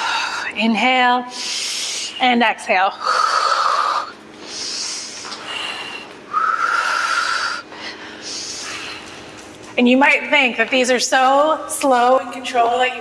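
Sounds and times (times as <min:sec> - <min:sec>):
long whistling exhales: 0:06.3 - 0:07.6.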